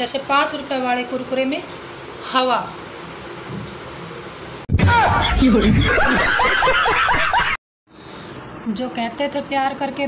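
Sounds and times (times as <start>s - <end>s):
person laughing loudly: 4.9s - 7.6s.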